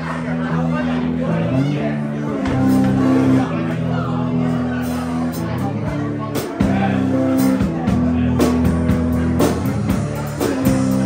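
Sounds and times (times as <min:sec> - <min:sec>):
electric guitar chords: 0:00.0 - 0:11.0
drum and cymbal hits: 0:04.8 - 0:11.0.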